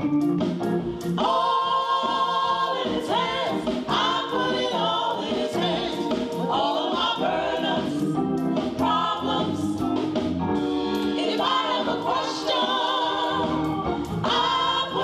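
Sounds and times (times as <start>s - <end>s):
vocal group singing gospel: 1.0s - 10.0s, 10.7s - 15.0s.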